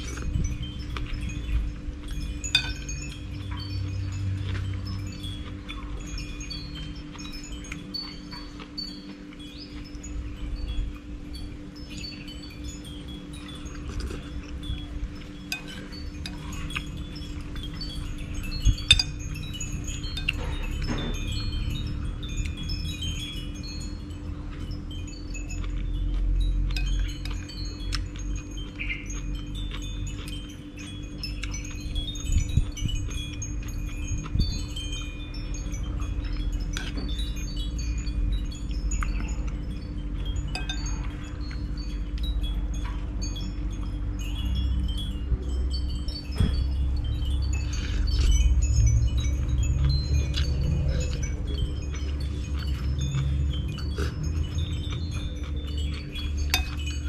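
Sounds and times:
steady low hum and rumble: 0.0 - 57.0
wind chimes tinkling: 0.0 - 57.0
spoon clinking on ceramic bowl: 2.3 - 3.2, 15.2 - 21.7, 40.5 - 41.7, 50.3 - 57.0.

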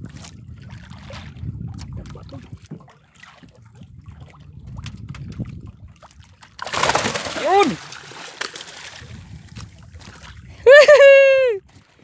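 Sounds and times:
wind buffeting microphone: 0.0 - 8.2, 8.8 - 12.0
water lapping against boat: 0.0 - 12.0.

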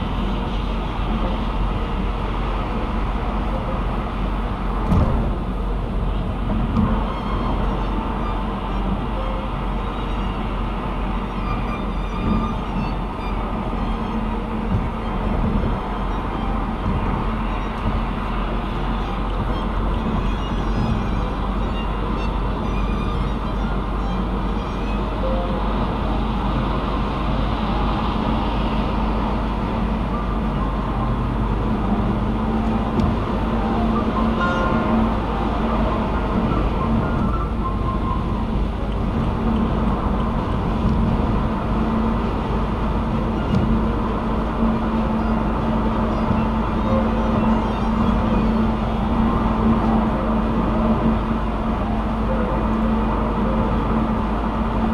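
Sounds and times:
car cabin road noise: 0.0 - 54.9.

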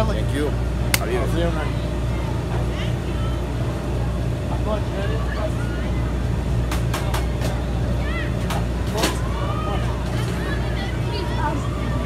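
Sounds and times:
distant voices: 0.0 - 12.0
low mechanical hum: 0.0 - 12.0.

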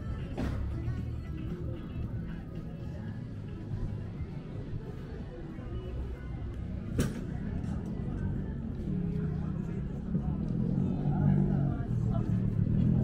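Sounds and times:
passersby talking: 0.0 - 13.0.

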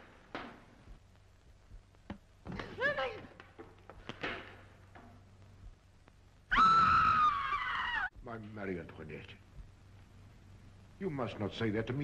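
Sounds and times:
woman screaming: 6.5 - 8.1.

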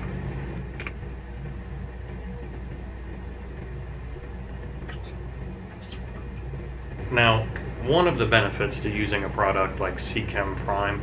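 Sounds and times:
low hum: 0.0 - 11.0.

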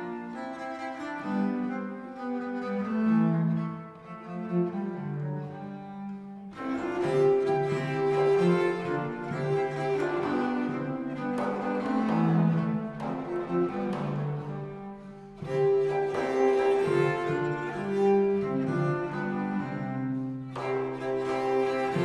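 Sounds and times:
viols playing slow polyphony: 0.0 - 22.0.

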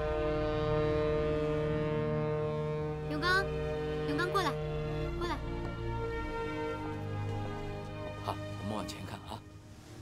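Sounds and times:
ship horn blast: 0.0 - 10.0.

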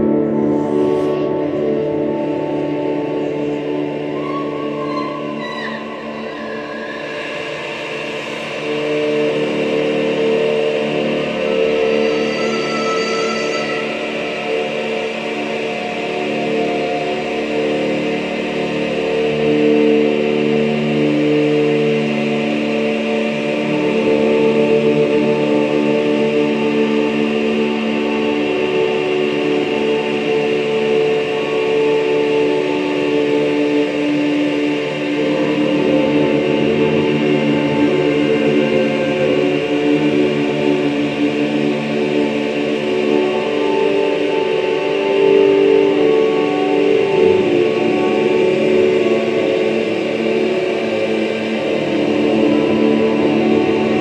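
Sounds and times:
electronic drone music: 0.0 - 54.0.

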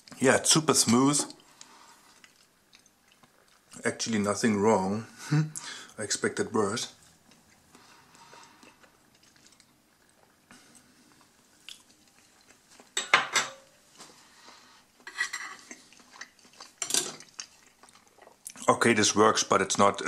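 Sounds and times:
cutlery clinking: 12.9 - 13.8, 15.0 - 15.7, 16.8 - 17.2.

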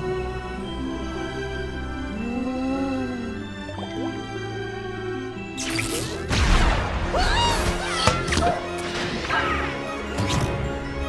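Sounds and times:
film trailer music: 0.0 - 11.0.

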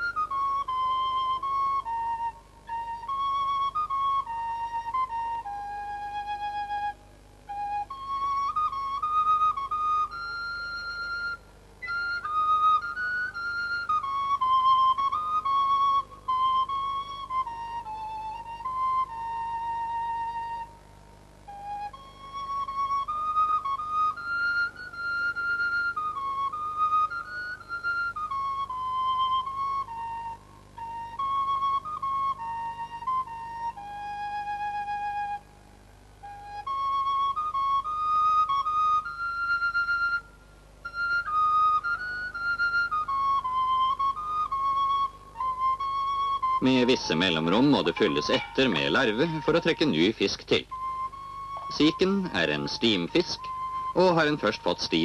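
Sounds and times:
solo flute slow melody: 0.0 - 55.0.

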